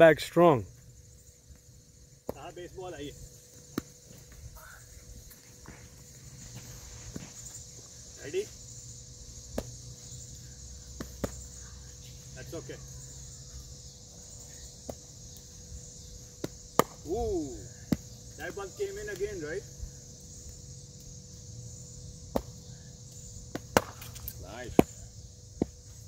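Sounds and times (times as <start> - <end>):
high-pitched insect chorus: 0.0 - 26.0.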